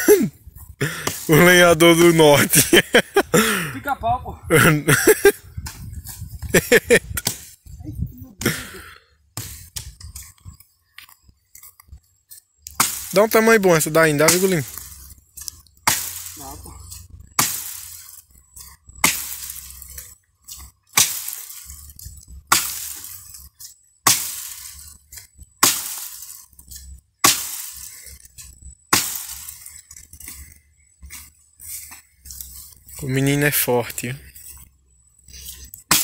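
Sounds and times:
axe chopping wood: 0:00.9 - 0:01.3, 0:07.2 - 0:07.6, 0:09.4 - 0:10.0, 0:12.7 - 0:13.1, 0:15.8 - 0:16.4, 0:17.4 - 0:17.9, 0:19.0 - 0:19.6, 0:20.9 - 0:21.7, 0:22.5 - 0:23.2, 0:24.0 - 0:24.8, 0:25.6 - 0:26.3, 0:27.2 - 0:28.0, 0:28.9 - 0:29.7.

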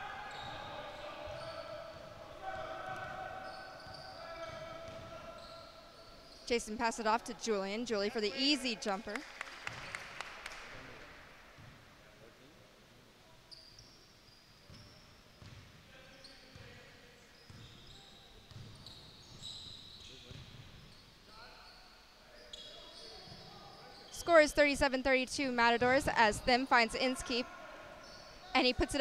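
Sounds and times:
sneaker squeaks: 0:00.0 - 0:07.2, 0:13.4 - 0:24.4, 0:28.0 - 0:29.0
players calling out: 0:00.0 - 0:09.2.

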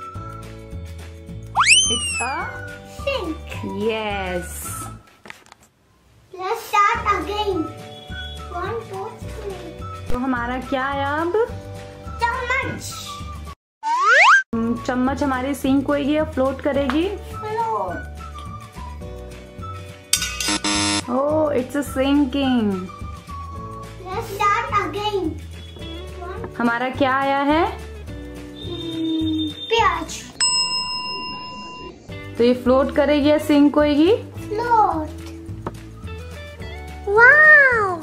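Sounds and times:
soft background music: 0:00.0 - 0:05.4, 0:06.6 - 0:13.5, 0:14.6 - 0:38.0
loud flat buzzer: 0:20.4 - 0:21.1.

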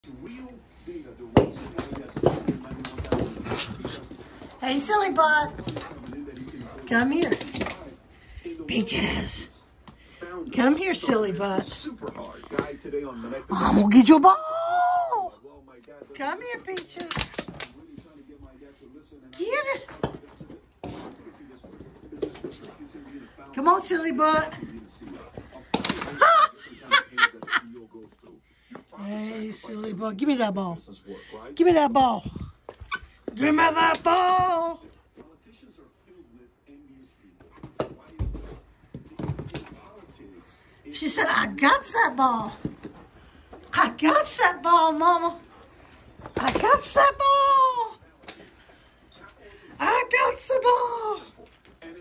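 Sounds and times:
ball bouncing: 0:01.3 - 0:03.5
dog paws running on wood floor: 0:01.4 - 0:08.0.

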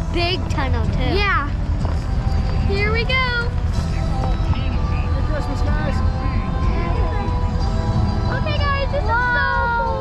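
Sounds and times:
music playing: 0:00.0 - 0:10.0.

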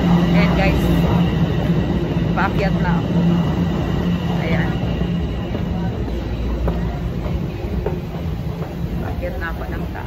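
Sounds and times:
subway train rumbling: 0:00.0 - 0:10.0.

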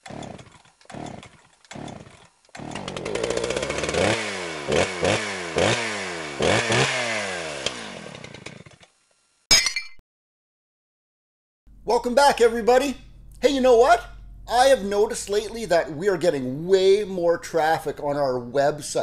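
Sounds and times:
chainsaw engine revving: 0:00.0 - 0:08.8.

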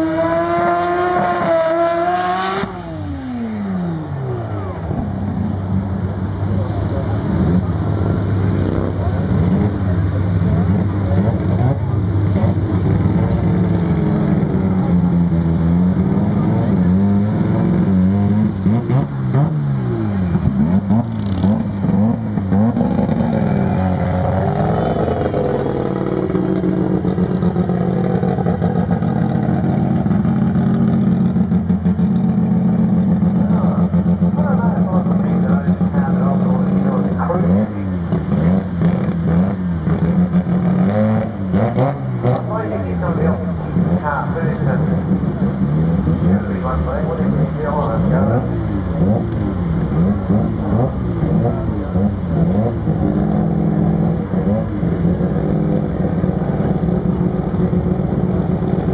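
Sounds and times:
car engine revving and idling: 0:00.0 - 0:58.9.

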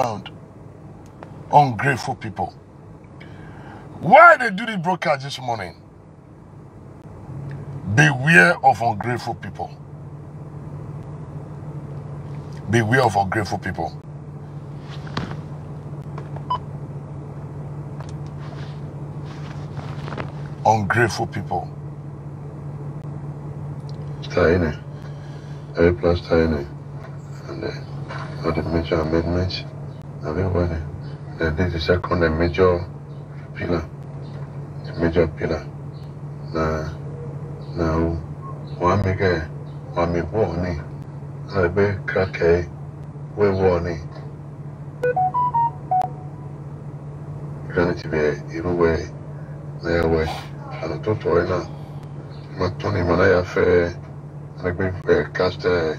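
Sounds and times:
steady low hum: 0:00.0 - 0:55.9
car cabin hum: 0:06.2 - 0:24.7
short electronic beep: 0:45.0 - 0:46.5.

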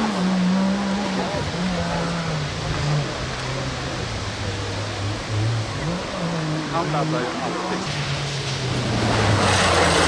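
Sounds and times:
rally car engine: 0:00.0 - 0:10.0.

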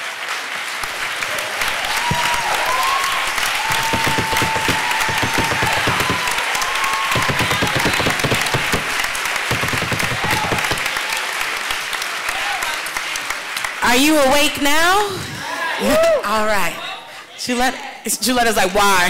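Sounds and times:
audience applauding: 0:00.0 - 0:15.2.

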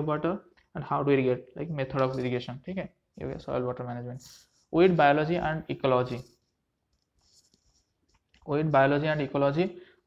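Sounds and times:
man speaking: 0:00.0 - 0:06.4, 0:08.4 - 0:09.8.

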